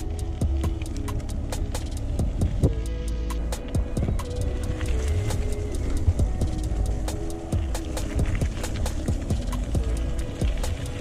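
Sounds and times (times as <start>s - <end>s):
bicycle rattling on gravel: 0.0s - 11.0s
low rumble: 0.0s - 11.0s.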